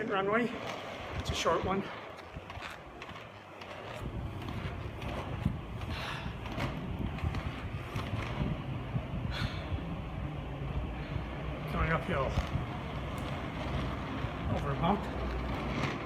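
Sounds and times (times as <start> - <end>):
skate stride scrapes: 0.0 - 9.2, 11.8 - 16.0
inline skates rolling: 0.0 - 16.0.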